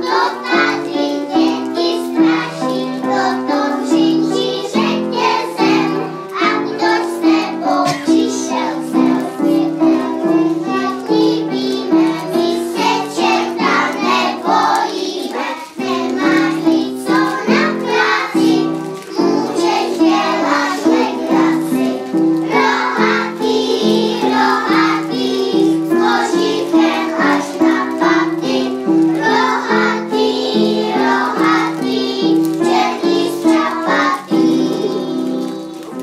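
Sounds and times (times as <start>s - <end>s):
children singing: 0.0s - 36.0s
music accompaniment: 0.0s - 36.0s.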